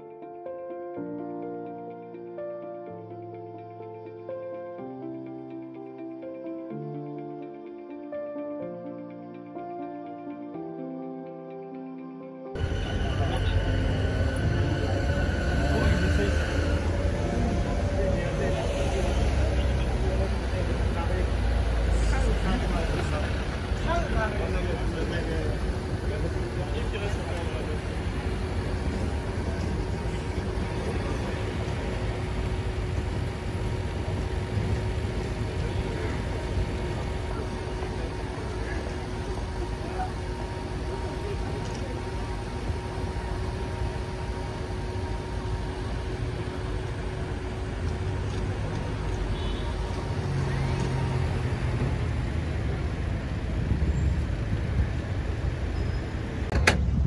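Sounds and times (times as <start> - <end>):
engine hum: 12.6 - 57.0
traffic rumble: 12.6 - 57.0.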